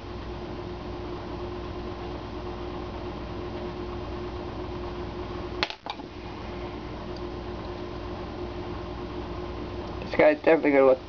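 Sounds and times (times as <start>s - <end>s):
room hum with faint tone: 0.0s - 11.0s.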